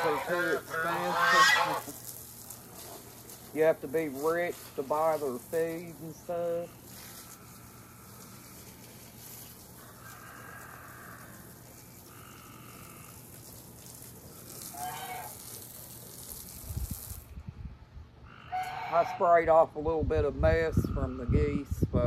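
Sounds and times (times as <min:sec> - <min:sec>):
hose spraying water on deck: 0:00.0 - 0:17.4.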